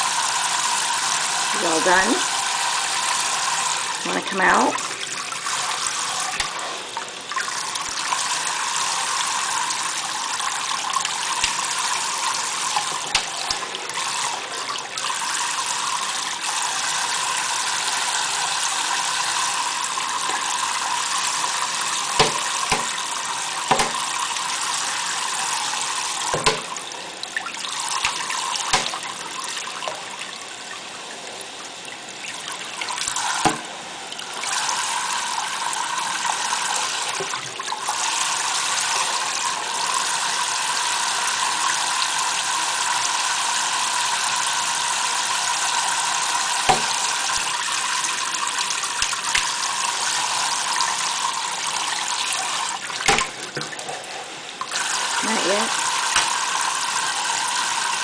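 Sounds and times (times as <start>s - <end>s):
faucet running into a metal sink: 0.0s - 58.0s.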